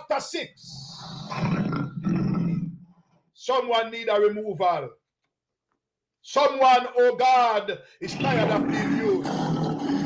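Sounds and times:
low rough growl: 0.6 - 2.9, 8.1 - 10.0.

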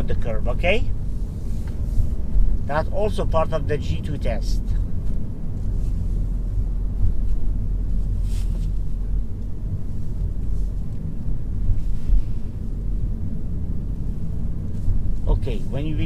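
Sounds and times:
car engine and tyre rumble: 0.0 - 16.0.

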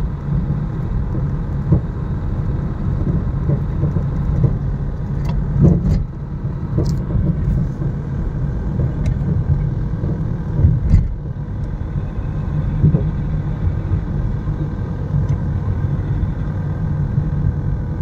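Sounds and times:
car engine and tyres rumbling: 0.0 - 18.0.

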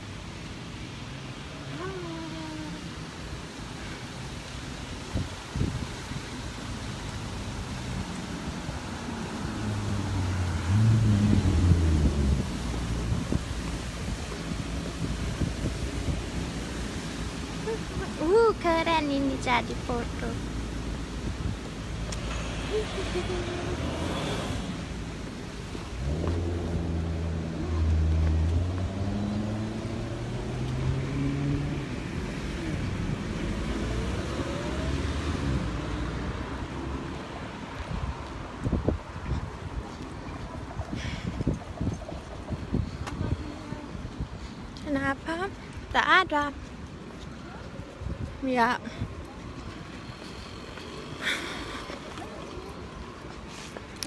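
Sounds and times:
steady traffic noise: 0.0 - 54.0
wind buffeting microphone: 4.8 - 31.0, 36.7 - 54.0
car driving past: 8.9 - 13.4, 22.0 - 25.1, 26.0 - 37.6
vehicle engine accelerating: 8.9 - 14.2, 22.0 - 37.1.

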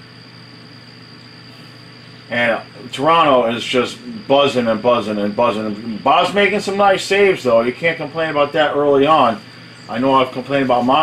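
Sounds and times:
electrical hum and hiss: 0.0 - 11.0
high-pitched whine: 0.0 - 11.0.

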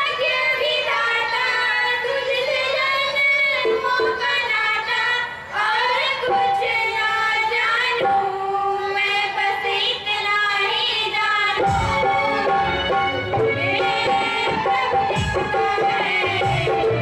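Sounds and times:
women singing together: 0.0 - 17.0.

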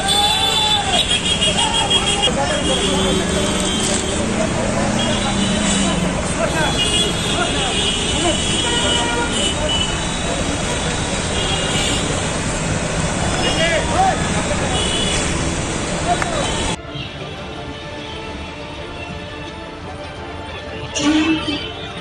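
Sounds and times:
crowd chatter and shouts: 0.0 - 11.9, 13.2 - 15.2
vehicle horns honking: 0.0 - 12.3, 13.3 - 15.5, 16.2 - 17.3, 20.9 - 22.0
road traffic: 0.0 - 22.0.

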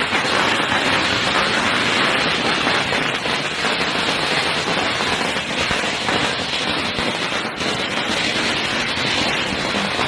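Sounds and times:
firecrackers crackling: 0.0 - 10.0.

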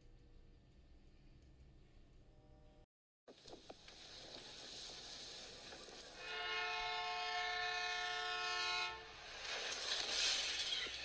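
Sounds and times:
train rushing through snow: 3.7 - 11.0
locomotive air horn blast: 6.2 - 9.2.

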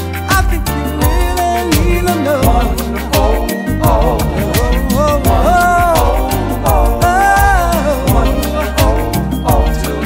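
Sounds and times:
bass line: 0.0 - 10.0
held bending lead melody: 0.0 - 10.0
r and b song: 0.0 - 10.0
drum beat: 0.3 - 10.0.

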